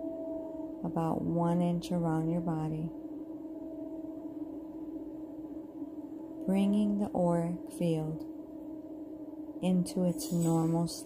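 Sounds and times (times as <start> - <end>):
low meditation drone tones: 0.0 - 11.0.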